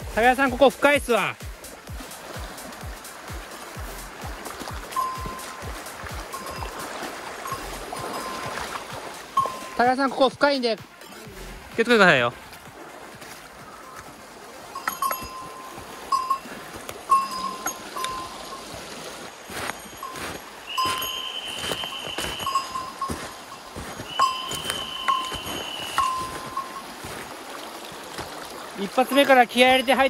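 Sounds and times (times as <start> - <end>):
creek water running: 0.0 - 30.0
small bell pings: 4.9 - 5.7, 6.3 - 8.6, 9.4 - 9.8, 14.7 - 18.7, 19.6 - 27.0
high censor beeps: 5.0 - 5.7, 9.4 - 9.8, 19.6 - 26.8.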